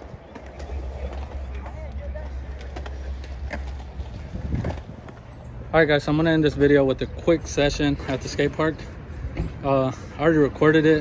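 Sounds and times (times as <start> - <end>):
skateboard clacks: 0.0 - 5.2
distant voices: 0.0 - 11.0
wind rumbling on microphone: 3.9 - 5.2.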